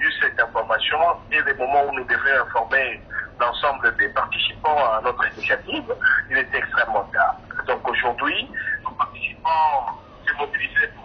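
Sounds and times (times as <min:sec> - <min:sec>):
man talking over telephone: 0:00.0 - 0:11.0.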